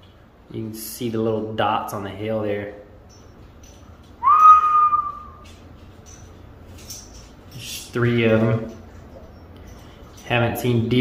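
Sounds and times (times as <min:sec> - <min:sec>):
person whistling rising note: 0:04.2 - 0:05.4.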